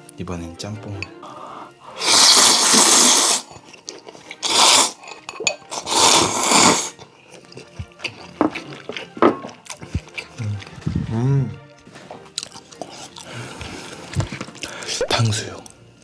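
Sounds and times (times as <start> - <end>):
slurping noodles and broth: 1.2 - 15.0
quiet chewing: 6.9 - 14.9.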